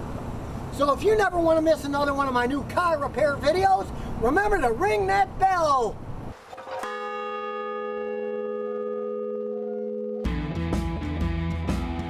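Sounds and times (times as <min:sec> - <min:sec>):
large bronze bell ringing: 0:06.8 - 0:10.3.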